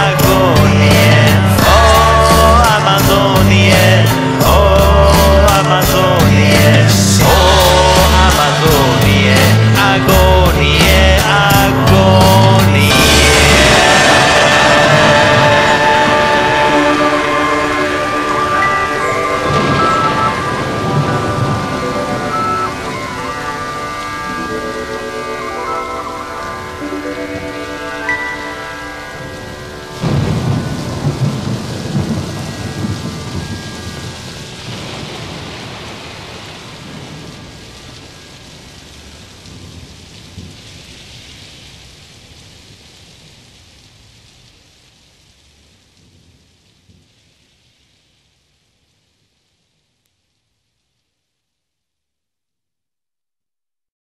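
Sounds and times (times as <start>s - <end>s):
thunder: 0.0s - 25.0s, 29.2s - 43.5s
held musical tones: 0.0s - 34.8s
rain: 0.0s - 52.0s.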